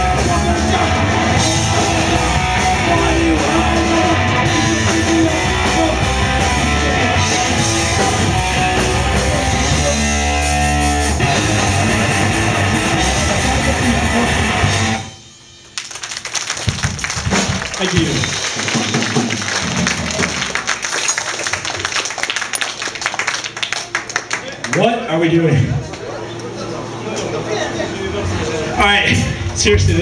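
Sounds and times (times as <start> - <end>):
punk band playing live: 0.0 - 21.1.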